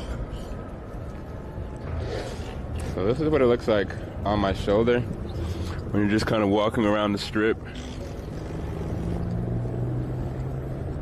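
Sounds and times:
street noise: 0.0 - 11.0
traffic engine drone: 0.0 - 11.0.

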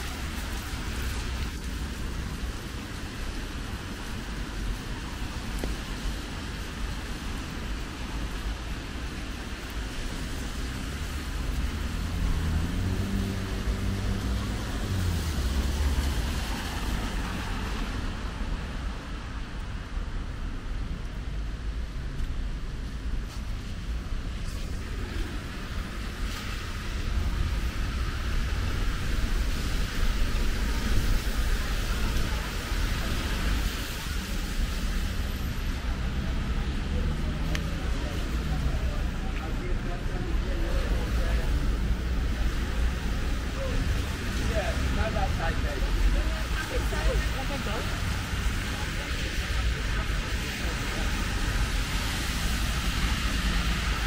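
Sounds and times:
tyres hissing on wet road: 0.0 - 54.0.

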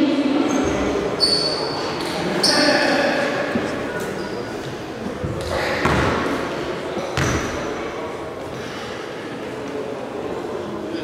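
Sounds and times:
short high squeak: 0.5 - 1.8
basketball bouncing on wooden court: 5.8 - 6.2, 7.2 - 7.6.

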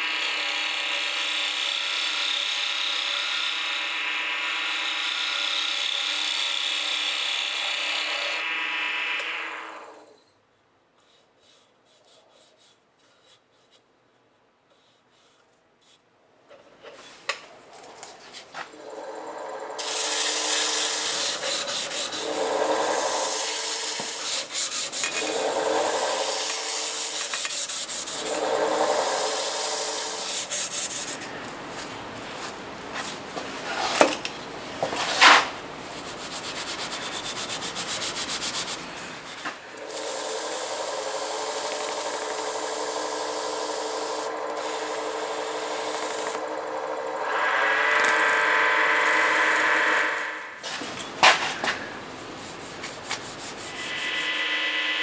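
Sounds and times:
wood lathe motor hum: 0.0 - 10.1, 18.8 - 31.5, 36.6 - 50.6
abrasive strip sanding: 19.8 - 31.3, 35.2 - 40.1, 52.3 - 54.5
paper towel rubbing: 52.2 - 53.8.

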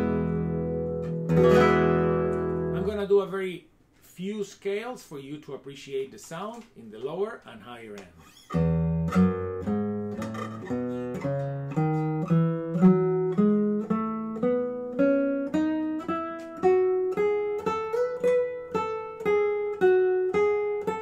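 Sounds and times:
classical guitar plucked scale: 0.0 - 3.0, 8.2 - 21.0.

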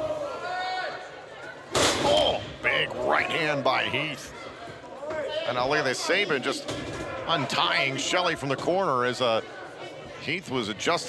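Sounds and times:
arena crowd: 0.0 - 11.0.

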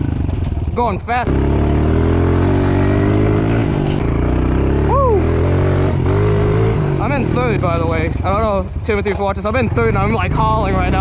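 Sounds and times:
dirt bike engine running: 0.0 - 11.0
rider talking: 0.5 - 1.6, 6.8 - 11.0
person whooping: 4.8 - 5.4.

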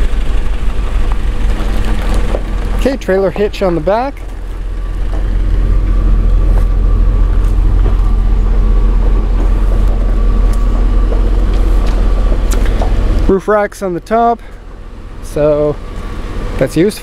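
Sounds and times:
vehicle engine rumble: 0.0 - 17.0.

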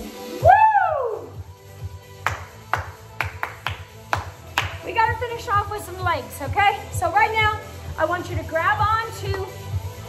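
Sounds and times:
workout music with bass beat: 0.0 - 10.0
hands clapping: 2.2 - 4.8.

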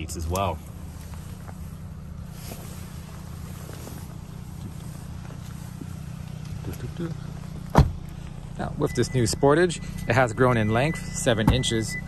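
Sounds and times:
faint shuffling: 0.5 - 8.6
car door shutting: 7.7 - 8.1, 11.3 - 11.8.

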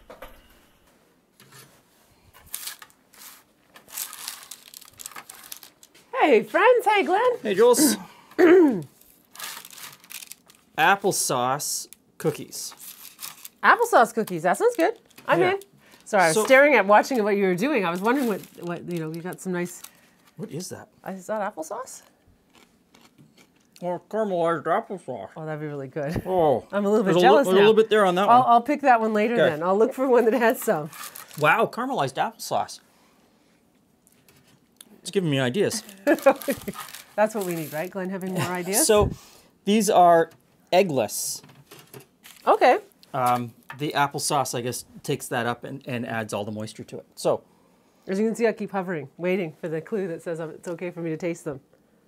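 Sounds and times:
parchment paper crinkling: 2.4 - 6.0, 9.0 - 10.7, 12.7 - 16.6, 17.6 - 20.7, 30.8 - 31.6, 35.7 - 38.7, 42.2 - 43.4.

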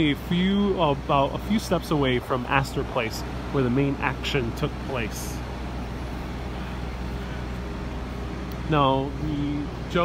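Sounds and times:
low rumble of passing cars: 0.0 - 10.0.

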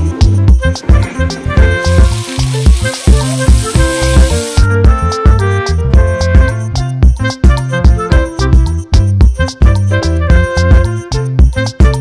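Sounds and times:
background music with steady beat: 0.0 - 12.0
fish sizzling in oil: 1.7 - 4.6.

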